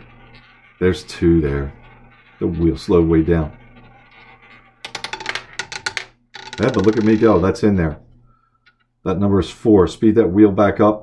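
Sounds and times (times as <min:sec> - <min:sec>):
roulette ball clattering: 0:03.8 - 0:07.6.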